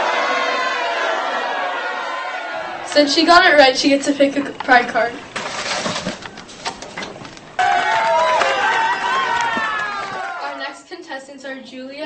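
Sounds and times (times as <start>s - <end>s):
paper cards rustling: 5.4s - 7.5s.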